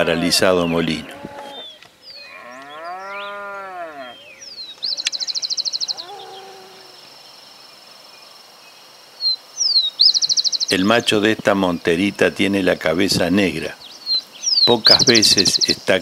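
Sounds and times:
cow mooing: 0.9s - 4.2s, 5.9s - 7.0s
bird trilling: 1.0s - 7.1s.

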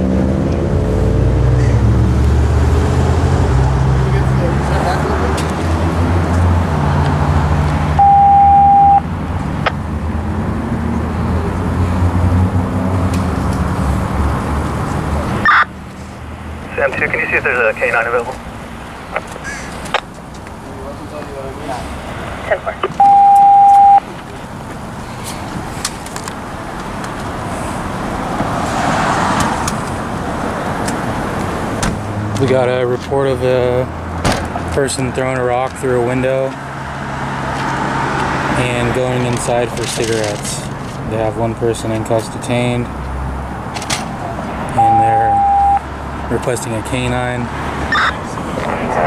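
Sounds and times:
car passing: 0.0s - 41.8s, 42.8s - 49.0s
low rumble of street traffic: 0.0s - 49.0s
electronic beep: 8.0s - 9.0s, 15.5s - 15.7s, 22.9s - 24.0s, 44.8s - 45.8s, 47.9s - 48.2s.

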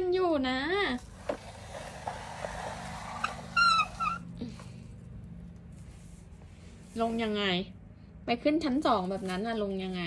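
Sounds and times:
prairie dog squeaking: 3.3s - 4.4s.

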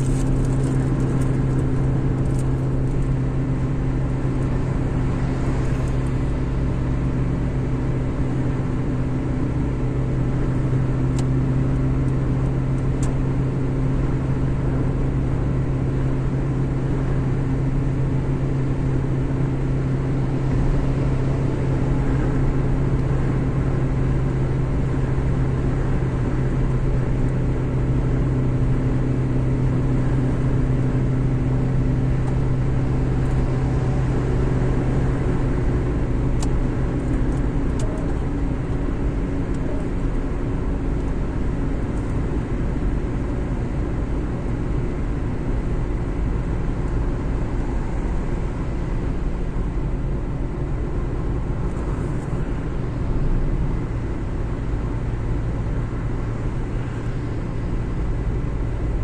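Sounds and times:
engine drone: 0.0s - 59.0s
tyre noise on road: 0.0s - 59.0s.

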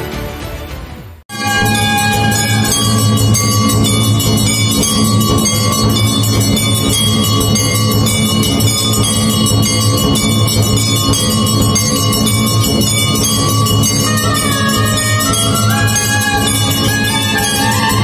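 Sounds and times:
temple bells ringing rapidly: 1.3s - 18.0s
steady low hum: 1.4s - 18.0s.

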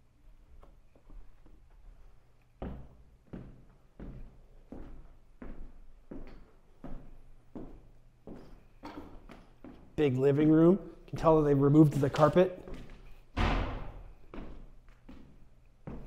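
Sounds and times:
footsteps on wooden floor: 0.6s - 16.0s.

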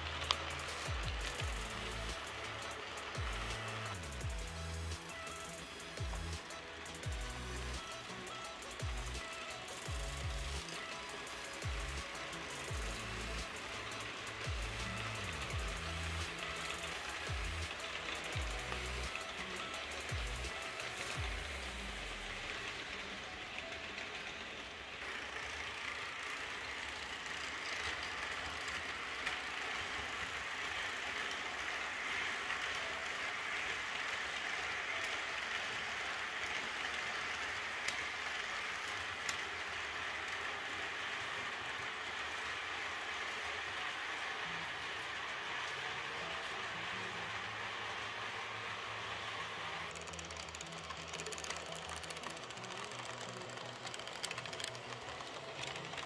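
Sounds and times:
background music with low bass: 0.0s - 22.5s
model trains rolling on track: 0.0s - 56.0s.

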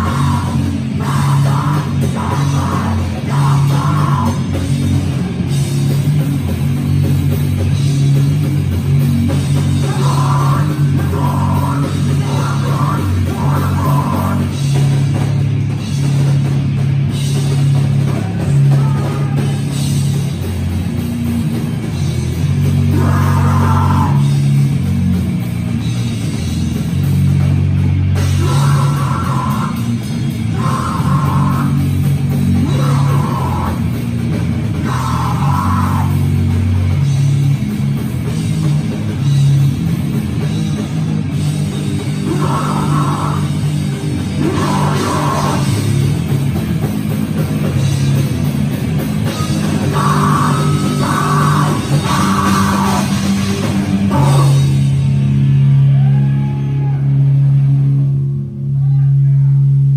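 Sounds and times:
bass guitar: 0.0s - 59.9s
drum kit: 0.0s - 59.9s
electric guitar: 0.0s - 59.9s.

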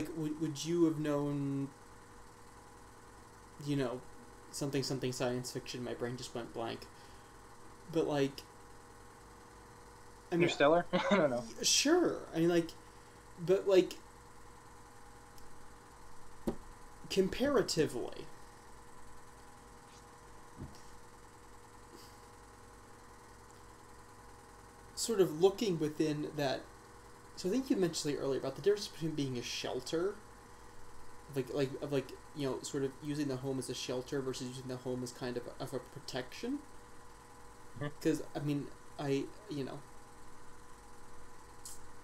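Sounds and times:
low hum and hiss: 0.0s - 42.0s.

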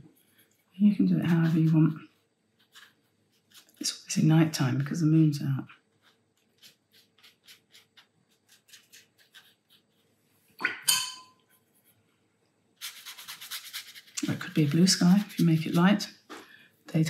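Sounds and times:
brush dabbing on paper: 0.0s - 10.2s, 12.8s - 16.4s.

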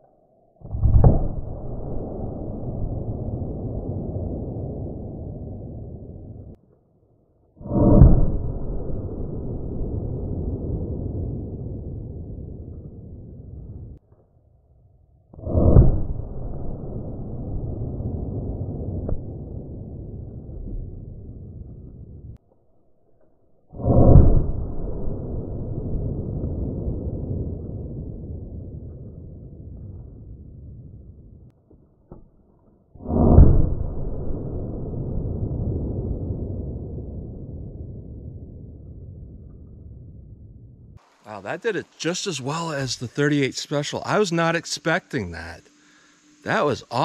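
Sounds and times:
slowed-down gunshots: 0.6s - 6.6s, 7.6s - 14.3s, 15.4s - 22.4s, 23.6s - 41.0s.

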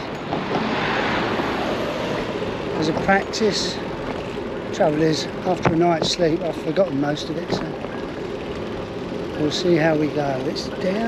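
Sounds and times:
bicycle road noise: 0.0s - 11.0s.

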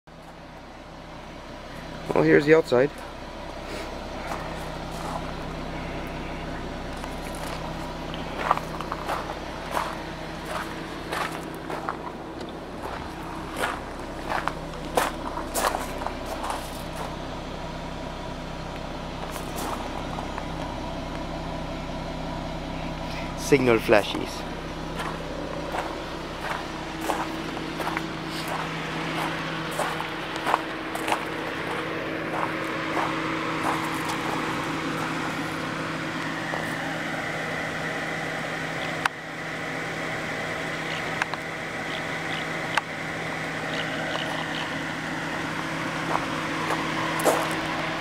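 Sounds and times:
car engine idling: 0.1s - 48.0s
footsteps on gravel: 4.2s - 5.4s, 7.0s - 17.2s, 19.2s - 20.3s, 24.9s - 35.6s, 46.0s - 47.9s.

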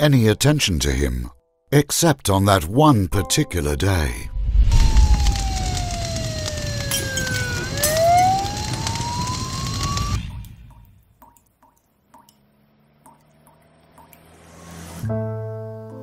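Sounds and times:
siren wailing: 4.5s - 10.7s
street traffic noise: 12.0s - 15.1s
faint ticks: 13.0s - 14.3s.

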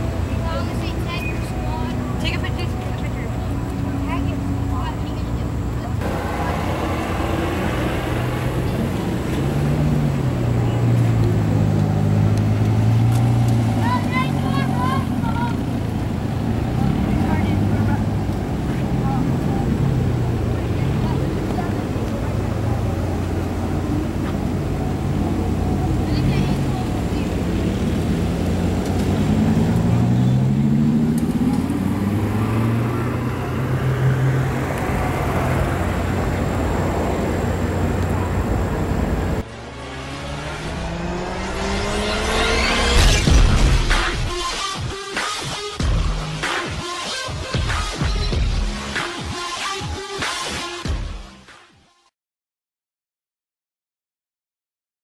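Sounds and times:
people talking: 0.0s - 12.3s, 13.7s - 28.2s, 29.1s - 39.4s
car engines revving: 0.0s - 49.3s.

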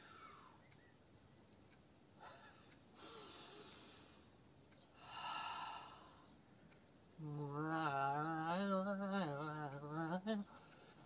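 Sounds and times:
person exhaling: 3.0s - 4.3s, 5.0s - 6.2s.

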